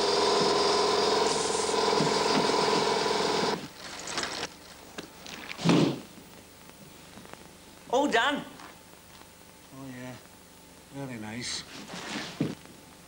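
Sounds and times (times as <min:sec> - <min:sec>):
small motor buzzing: 0:00.0 - 0:03.6.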